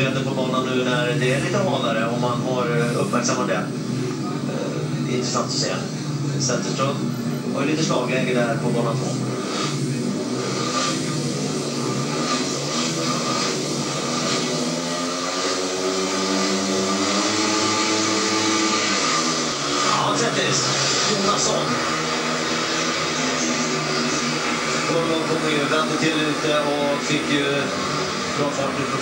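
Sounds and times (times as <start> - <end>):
motorcycle engines revving: 0.0 - 29.0.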